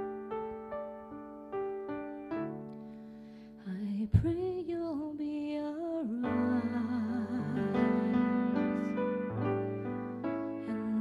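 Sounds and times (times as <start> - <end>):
piano chords: 0.0 - 4.8, 5.8 - 11.0
solo voice singing slow melody: 3.6 - 9.1, 10.5 - 11.0.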